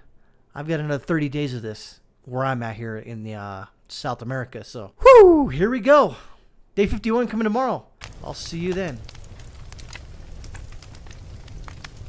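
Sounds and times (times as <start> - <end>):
crackling clicks: 8.0 - 12.0.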